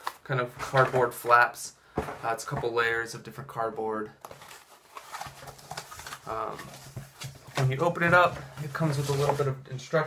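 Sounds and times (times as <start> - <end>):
cardboard rustling and scraping: 4.3 - 9.6.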